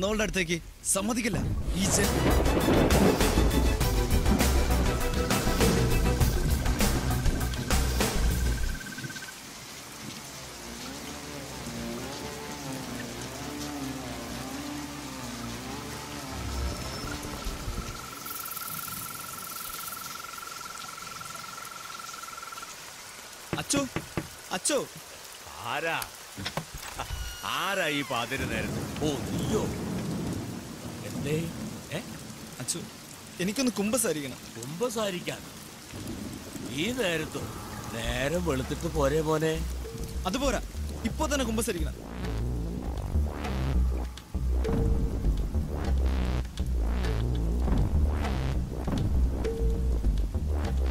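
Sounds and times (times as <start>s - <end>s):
people talking: 0.0s - 2.3s, 23.6s - 24.9s, 27.4s - 29.8s, 36.7s - 42.0s
heavy rain falling: 0.0s - 50.9s.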